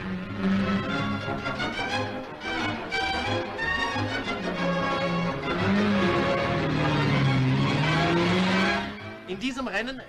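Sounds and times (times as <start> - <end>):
racing car engine accelerating: 0.0 - 9.4
newsreel background music: 0.0 - 10.0.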